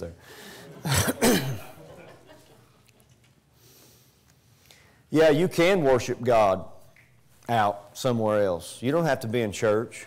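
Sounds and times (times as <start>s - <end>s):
man clearing his throat: 0.8s - 1.8s.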